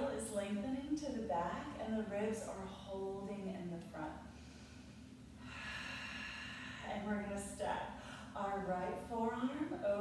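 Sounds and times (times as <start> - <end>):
person breathing: 4.3 - 7.1, 7.9 - 8.4.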